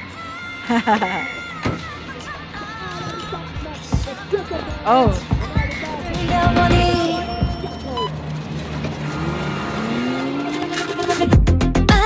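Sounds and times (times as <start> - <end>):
car engine revving: 1.3 - 12.0.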